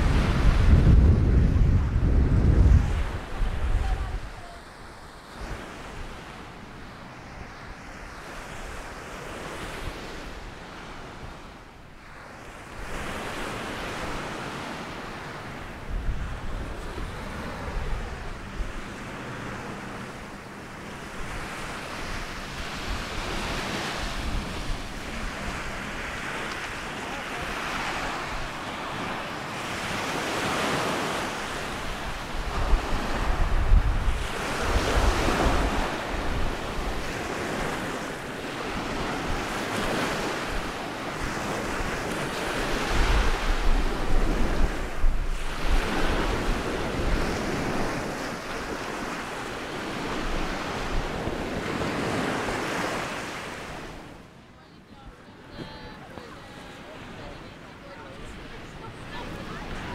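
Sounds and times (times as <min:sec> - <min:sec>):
wind buffeting microphone: 0:00.0 - 0:04.6, 0:15.4 - 0:49.2
waves washing up sand shore: 0:00.0 - 0:54.4, 0:55.4 - 0:59.9.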